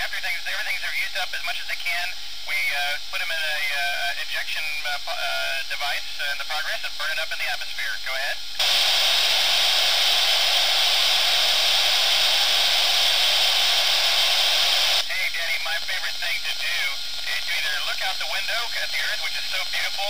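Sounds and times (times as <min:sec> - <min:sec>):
radio receiver hiss: 0:00.0 - 0:20.0
voice over radio: 0:15.0 - 0:20.0.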